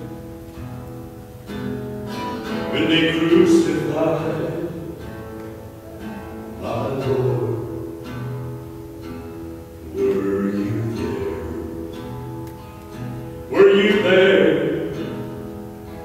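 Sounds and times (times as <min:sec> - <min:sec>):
acoustic guitar strums: 0:00.0 - 0:16.0.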